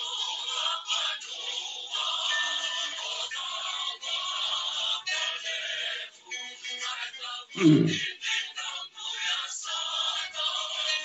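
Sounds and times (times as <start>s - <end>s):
song with sung vocals: 0.0s - 11.0s.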